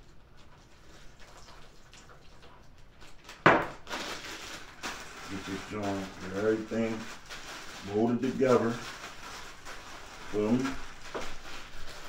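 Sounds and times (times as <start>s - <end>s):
plastic bag handling: 3.3s - 12.0s.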